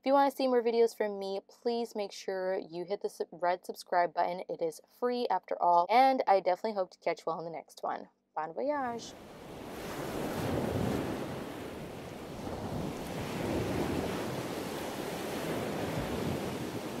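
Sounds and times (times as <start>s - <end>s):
ocean waves washing: 8.9s - 17.0s.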